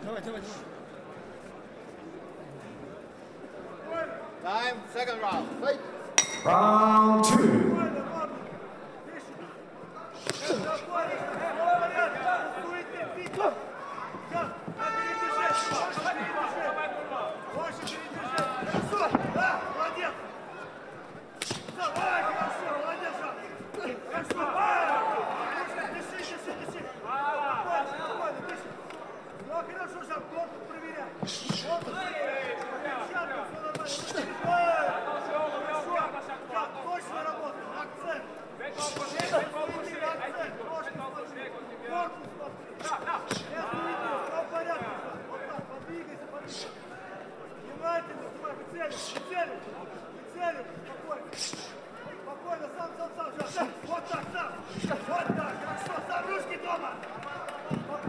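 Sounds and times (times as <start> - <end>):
people shouting: 13.4 - 20.2, 21.4 - 26.4.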